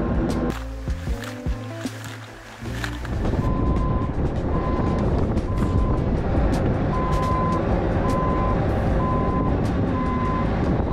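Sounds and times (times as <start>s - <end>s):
backup alarm beeping: 6.9s - 10.5s.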